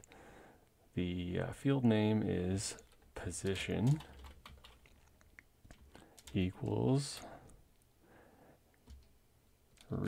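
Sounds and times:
typing on computer keyboard: 2.8s - 7.3s.

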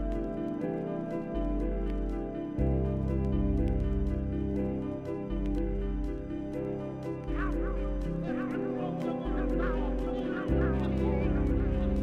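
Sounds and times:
minimal techno music: 0.0s - 12.0s.

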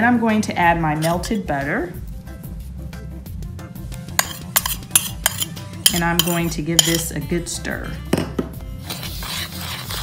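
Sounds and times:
background music: 0.0s - 10.0s
metal spoon clinking against bowl: 4.2s - 7.2s.

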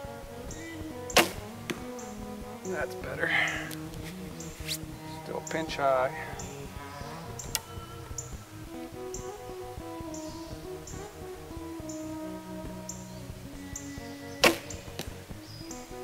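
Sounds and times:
music with steady beat: 0.0s - 16.0s
bow shot crack: 1.1s - 2.2s, 14.4s - 15.2s.

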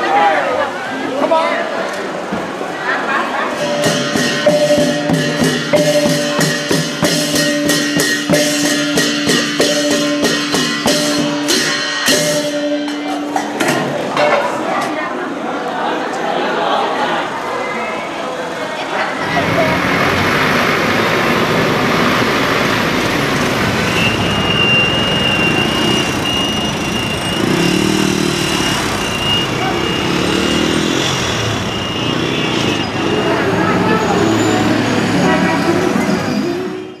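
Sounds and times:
vehicles driving past: 0.0s - 37.0s
voices: 0.0s - 37.0s
horn toots: 23.9s - 37.0s.

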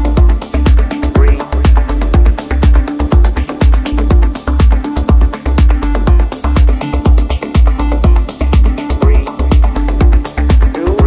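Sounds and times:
deep sustained bass line: 0.0s - 11.0s
four-on-the-floor kick drum: 0.0s - 11.0s
hi-hats: 0.0s - 11.0s.

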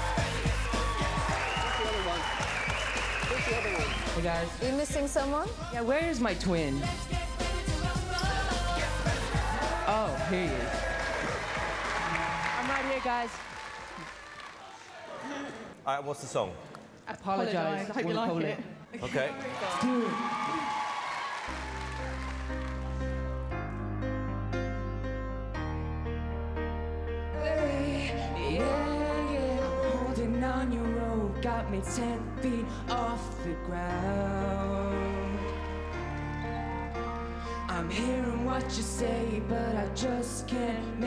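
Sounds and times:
audience applause: 0.0s - 4.4s, 9.1s - 15.6s, 19.4s - 23.4s
background music with steady beat: 0.0s - 12.4s.

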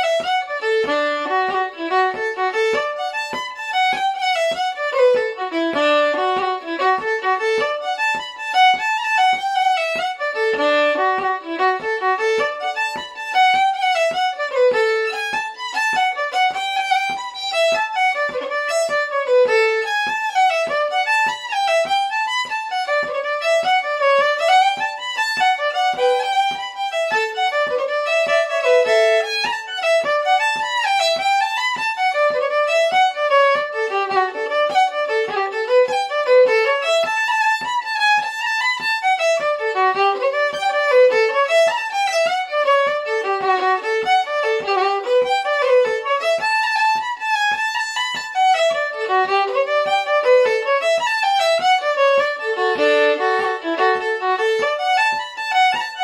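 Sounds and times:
solo fiddle playing jigs: 0.0s - 56.0s.

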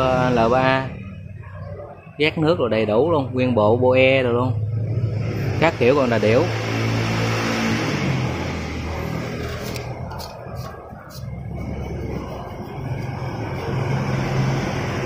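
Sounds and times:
engine humming: 0.0s - 15.0s.

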